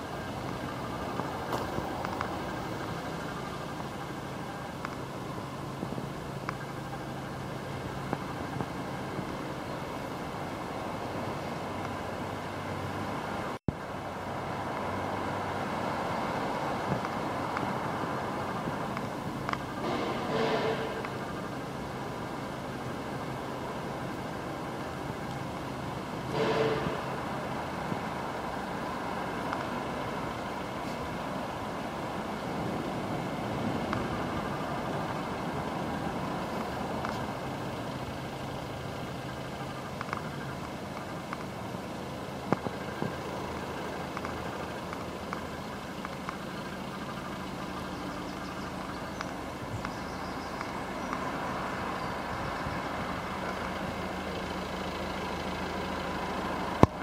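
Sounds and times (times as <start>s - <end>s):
vehicle engine hum: 0.0s - 57.0s
faint clicks: 38.6s - 41.6s, 42.4s - 51.3s.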